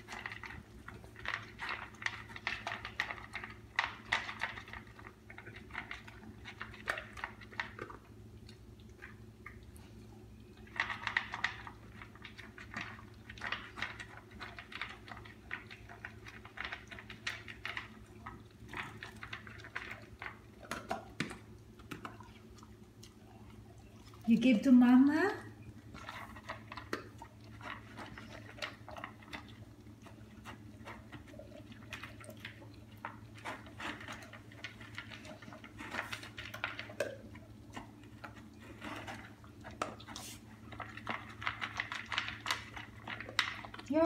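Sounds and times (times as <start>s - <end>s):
dog crunching dry kibble: 0.0s - 44.0s.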